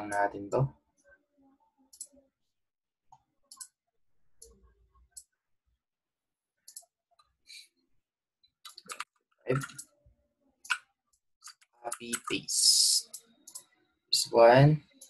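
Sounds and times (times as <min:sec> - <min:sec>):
computer mouse clicks: 0:01.9 - 0:02.2, 0:03.1 - 0:03.8, 0:06.7 - 0:07.3, 0:08.7 - 0:09.9, 0:10.6 - 0:13.7.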